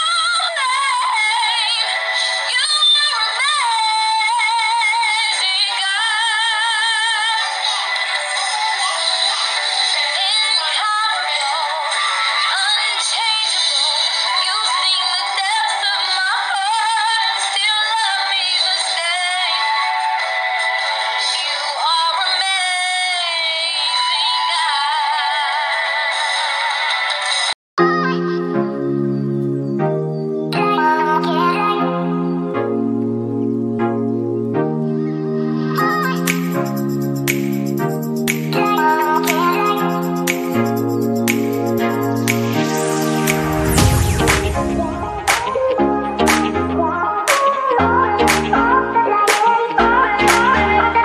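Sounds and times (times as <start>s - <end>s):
woman singing with vibrato: 0.0s - 27.2s, 30.6s - 32.5s, 35.6s - 36.8s, 38.6s - 41.2s, 42.2s - 51.0s.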